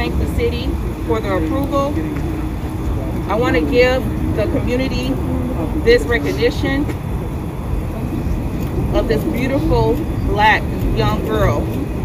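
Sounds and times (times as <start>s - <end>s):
street background rumble: 0.0s - 12.0s.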